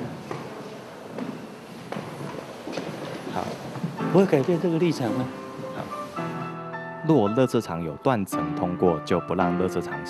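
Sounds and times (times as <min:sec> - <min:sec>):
footsteps on hard floor: 0:00.1 - 0:06.5.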